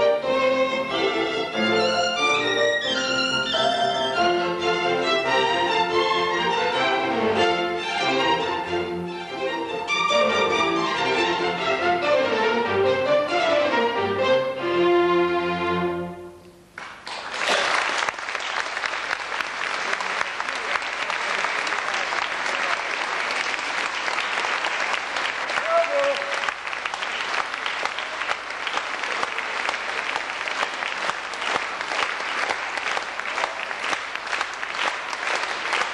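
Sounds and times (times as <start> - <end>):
audience applauding: 16.8 - 35.9.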